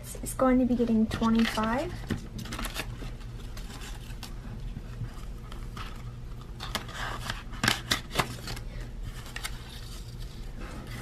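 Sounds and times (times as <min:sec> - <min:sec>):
plastic and paper rustling: 0:01.1 - 0:11.0.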